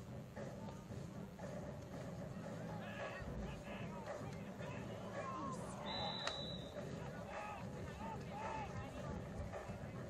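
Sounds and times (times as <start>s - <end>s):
spectators chattering: 0.0s - 10.0s
referee's whistle blast: 5.8s - 6.8s.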